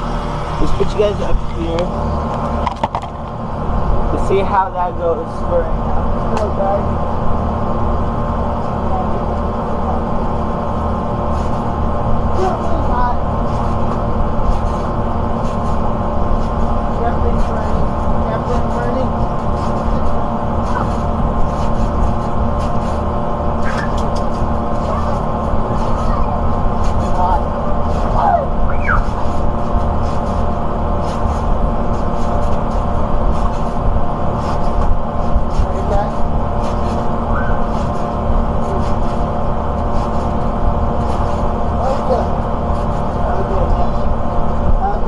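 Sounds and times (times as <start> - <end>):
constant hum: 0.0 - 45.0
steady low rumble: 0.0 - 45.0
trampoline clicks: 10.2 - 45.0
children's voices: 24.8 - 26.5.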